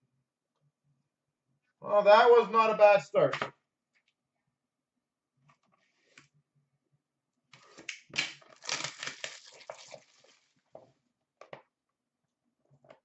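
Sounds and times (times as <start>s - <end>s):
packaging being torn open: 8.2s - 10.3s.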